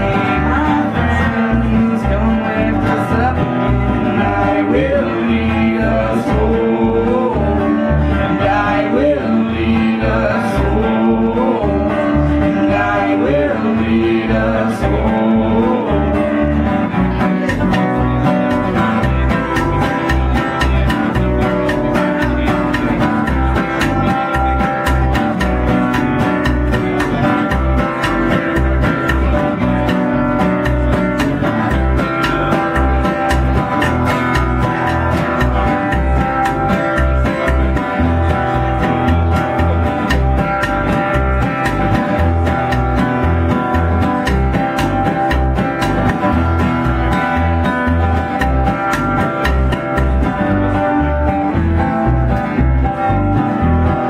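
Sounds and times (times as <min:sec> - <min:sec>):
acoustic guitar: 0:00.0 - 0:54.0
upright bass low notes: 0:00.0 - 0:54.0.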